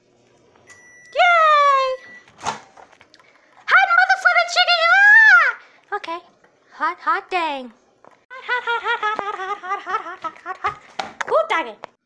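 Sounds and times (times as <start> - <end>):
microwave oven long beep: 0.5 - 2.5.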